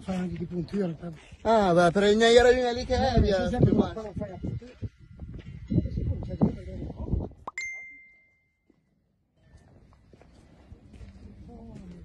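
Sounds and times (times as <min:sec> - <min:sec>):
clear high ding: 0:07.5 - 0:08.6.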